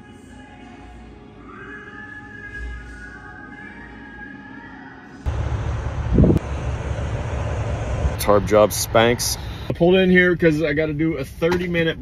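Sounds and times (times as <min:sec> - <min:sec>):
faint music: 0:00.0 - 0:05.3
heavy trucks moving: 0:05.3 - 0:09.7.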